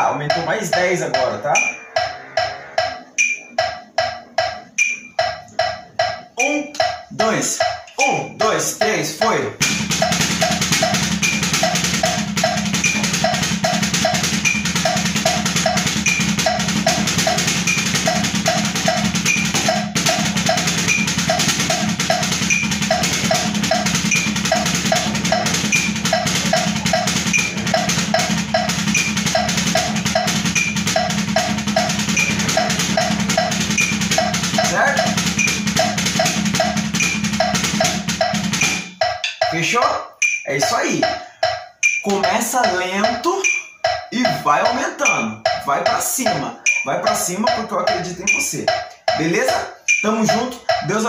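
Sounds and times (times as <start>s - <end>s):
drumsticks on practice pad: 0.0s - 39.6s, 40.2s - 51.0s
backing track with steady beat: 0.0s - 51.0s.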